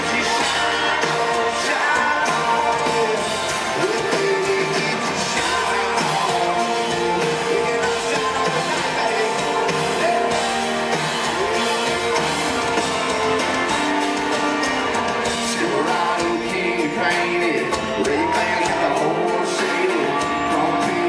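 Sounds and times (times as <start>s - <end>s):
man singing into a microphone: 0.0s - 12.0s, 15.2s - 21.0s
amplified guitar: 0.0s - 21.0s
drums: 0.0s - 21.0s.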